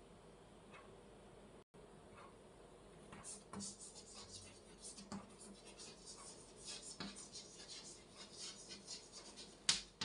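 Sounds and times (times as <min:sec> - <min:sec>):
chalk scratching on blackboard: 0:03.1 - 0:10.0.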